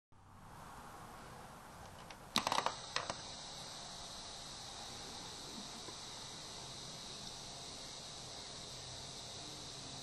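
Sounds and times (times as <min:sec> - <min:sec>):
faint high-pitched whine: 0:00.2 - 0:10.0
sharp clicks: 0:01.8 - 0:03.3
hiss: 0:02.4 - 0:10.0.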